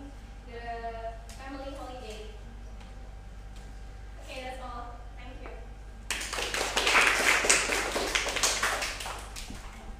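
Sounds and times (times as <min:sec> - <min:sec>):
small group applauding: 0:06.1 - 0:09.8.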